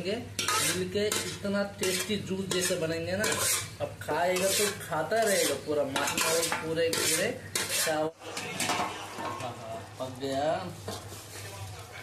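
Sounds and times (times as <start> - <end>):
spoon clinking and scraping on metal: 0.4 - 3.7, 4.4 - 9.5.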